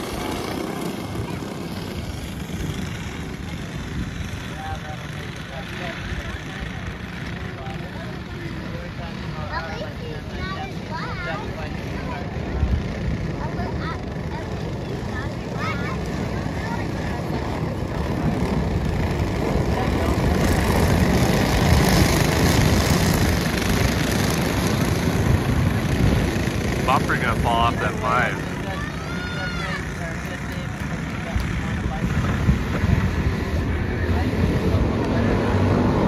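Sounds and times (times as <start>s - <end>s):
go-kart engines racing: 0.0s - 36.0s
people talking: 26.8s - 35.4s.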